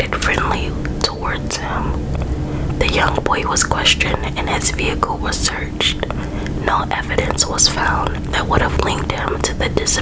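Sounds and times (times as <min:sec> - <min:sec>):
low hum: 0:00.0 - 0:10.0
person whispering: 0:02.8 - 0:10.0.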